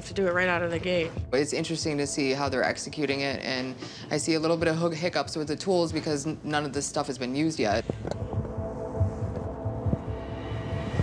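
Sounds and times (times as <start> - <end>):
tense music with pulsing beat: 0.0 - 3.5, 4.4 - 11.0.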